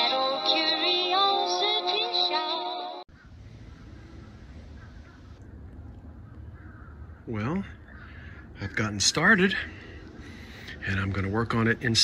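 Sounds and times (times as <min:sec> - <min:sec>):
distant bird calls: 0:03.1 - 0:12.0
low steady rumble: 0:03.1 - 0:12.0.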